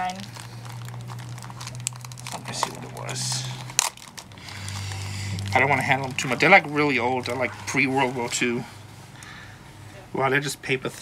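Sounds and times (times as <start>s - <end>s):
paper cards crinkling and rustling: 0.0s - 9.3s
steady low hum: 0.0s - 11.0s.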